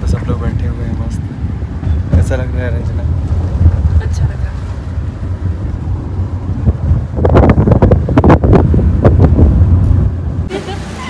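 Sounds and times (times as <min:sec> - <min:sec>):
wind buffeting microphone: 0:00.0 - 0:10.5
car cabin rumble: 0:00.0 - 0:11.0.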